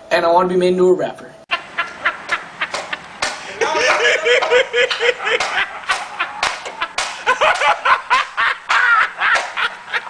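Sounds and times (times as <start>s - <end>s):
high-pitched laughter: 1.5s - 10.0s.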